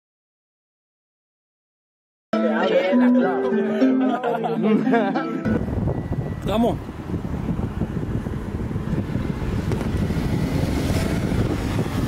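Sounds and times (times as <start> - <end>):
car engine pulling away: 5.5 - 12.0
wind rumble on microphone: 5.5 - 12.0.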